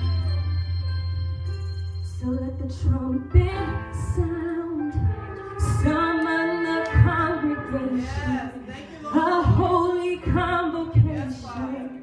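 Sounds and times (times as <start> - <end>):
low bass notes: 0.0 - 8.6
instrumental backing: 0.0 - 11.9
woman singing worship song: 2.2 - 12.0.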